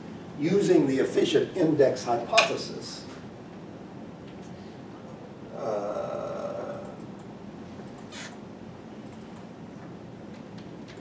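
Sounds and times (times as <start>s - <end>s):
low room noise: 0.0s - 11.0s.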